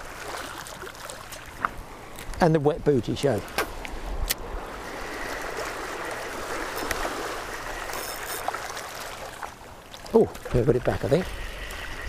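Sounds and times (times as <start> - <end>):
waves washing over pebbles: 4.5 - 12.0.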